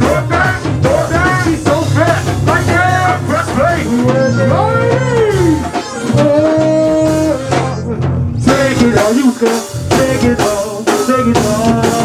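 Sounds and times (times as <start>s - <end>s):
bass line: 0.0s - 12.0s
drums: 0.0s - 12.0s
voices singing and chanting: 0.0s - 12.0s.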